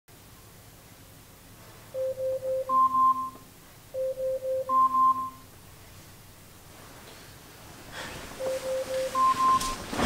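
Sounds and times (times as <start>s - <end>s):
electronic alarm beeping: 2.0s - 3.4s, 4.0s - 5.5s, 8.4s - 9.8s.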